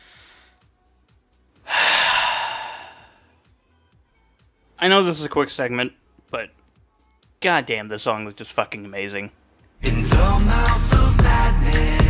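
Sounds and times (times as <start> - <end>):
man's heavy sigh: 1.7 - 3.2.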